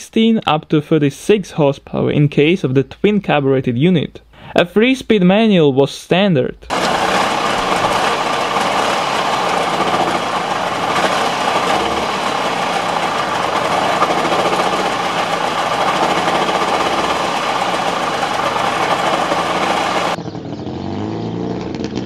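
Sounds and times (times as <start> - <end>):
two-stroke car engine running: 6.7 - 22.0.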